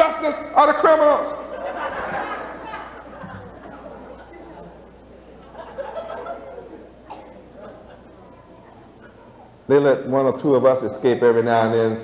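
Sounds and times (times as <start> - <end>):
steady low hum: 0.0 - 12.0
murmuring voices of audience: 1.3 - 9.7.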